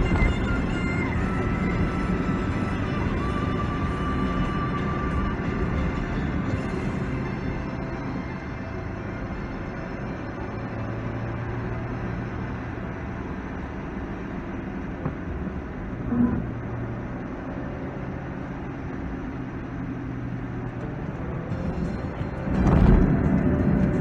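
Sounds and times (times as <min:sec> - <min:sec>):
engine hum: 0:00.0 - 0:24.0
tyres on wet road: 0:00.0 - 0:24.0.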